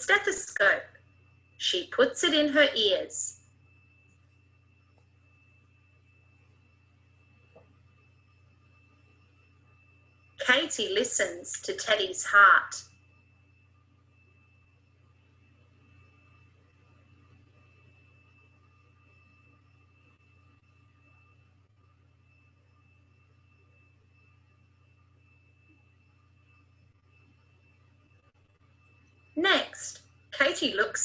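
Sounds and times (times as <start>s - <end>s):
faint low hum: 0.0s - 31.0s.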